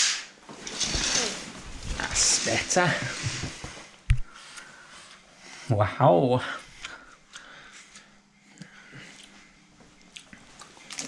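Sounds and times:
curtain swishing along rail: 0.0s - 3.9s
curtain rustling: 0.0s - 4.0s.

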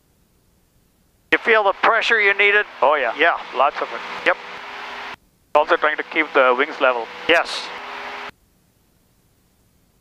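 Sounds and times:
small plane engine hum: 1.4s - 8.3s.

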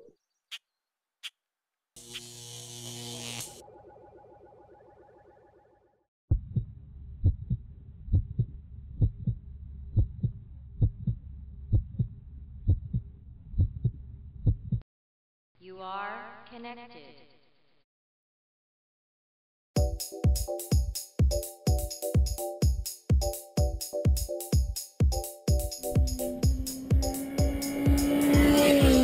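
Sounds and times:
static burst with buzzing tone: 2.0s - 3.6s
heartbeat-like thumps: 6.3s - 14.8s, 23.2s - 29.0s.

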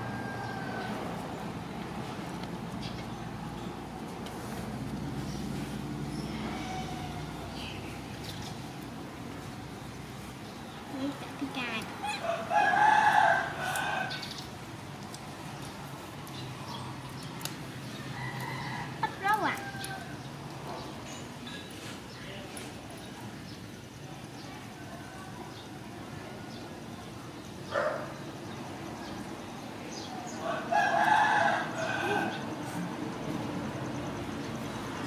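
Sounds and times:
rooster crowing: 0.0s - 1.2s, 6.1s - 7.6s, 12.0s - 14.3s, 17.9s - 20.3s, 30.3s - 32.8s
steady background noise: 0.0s - 35.0s.

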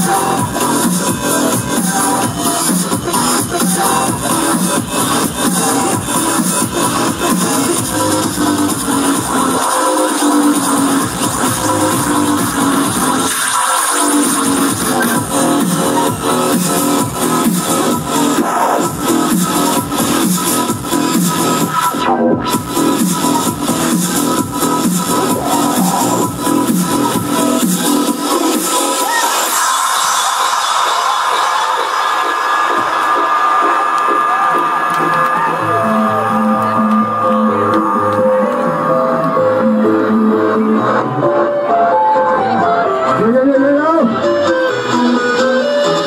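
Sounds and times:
electronic dance music: 0.0s - 46.0s
crowd cheering and whooping: 0.1s - 4.2s, 25.0s - 26.6s, 28.9s - 43.0s.

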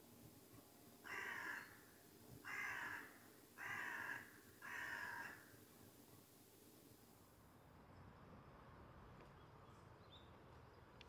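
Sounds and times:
crow cawing: 1.0s - 1.8s, 2.4s - 5.5s.

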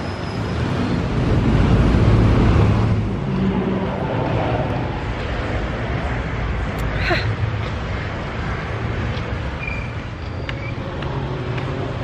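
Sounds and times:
city street noise: 0.0s - 12.0s.

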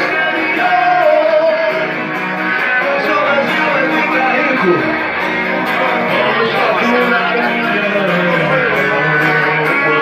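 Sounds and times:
acoustic rock band playing: 0.0s - 10.0s
guitar strumming: 0.0s - 10.0s.

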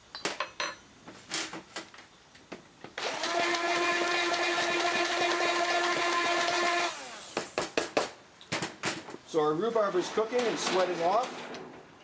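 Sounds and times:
immersion blender whine: 3.0s - 7.4s.

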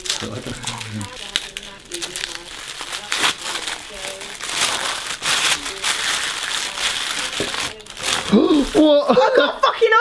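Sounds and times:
plastic wrapping crinkling: 0.0s - 9.1s.

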